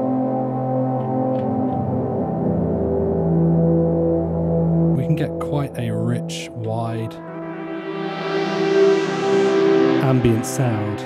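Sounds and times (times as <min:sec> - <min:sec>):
synth pad chord with reverb: 0:00.0 - 0:11.0.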